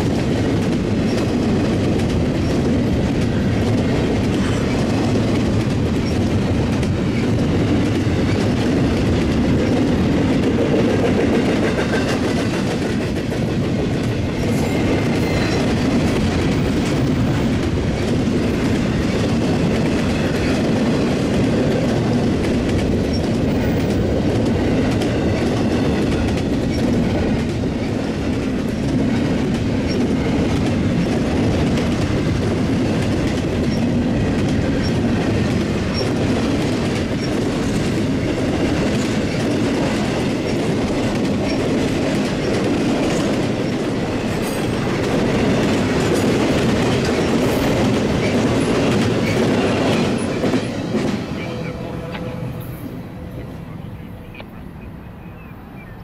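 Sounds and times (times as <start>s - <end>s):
freight train wheels rumbling on rail: 0.0s - 56.0s.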